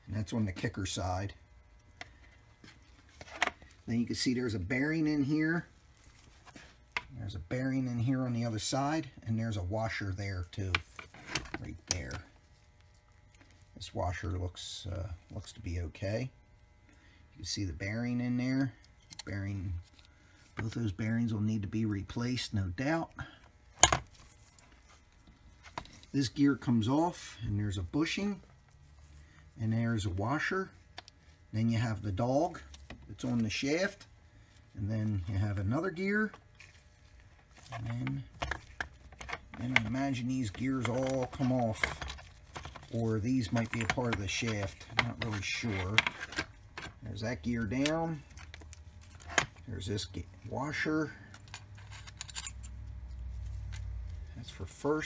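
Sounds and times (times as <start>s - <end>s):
steady low hum: 0.0s - 55.0s
metal gear clinking against metal: 51.4s - 52.8s.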